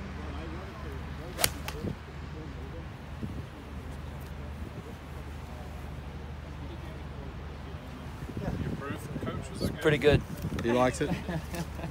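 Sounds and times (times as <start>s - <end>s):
low outdoor background: 0.0s - 11.9s
golf club striking ball: 1.4s - 1.9s.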